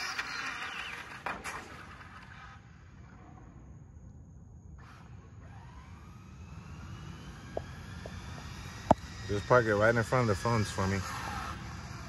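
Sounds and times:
distant motor whine: 0.0s - 12.0s.

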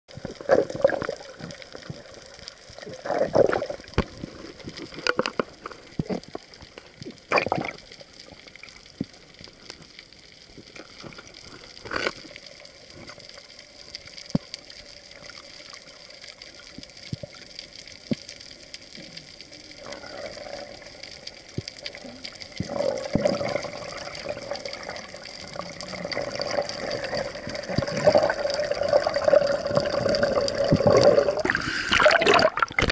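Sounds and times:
muffled underwater water noise: 0.1s - 32.9s
faint clicks: 3.9s - 23.4s.

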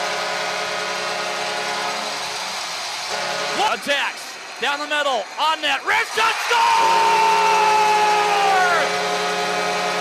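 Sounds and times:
arena goal horn: 0.0s - 2.2s, 3.1s - 3.8s, 6.8s - 10.0s
crowd cheering: 1.4s - 10.0s.

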